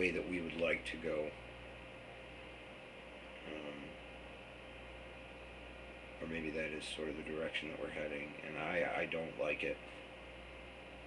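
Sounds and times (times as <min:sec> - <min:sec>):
faint steady hiss: 0:00.0 - 0:11.0
low mains hum: 0:00.0 - 0:11.0.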